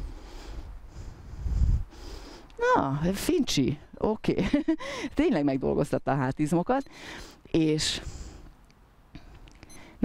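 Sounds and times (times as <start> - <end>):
wind buffeting microphone: 0.0 - 2.0.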